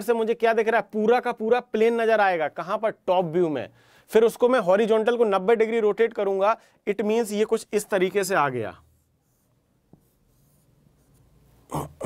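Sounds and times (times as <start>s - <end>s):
marker strokes on whiteboard: 8.8s - 11.6s.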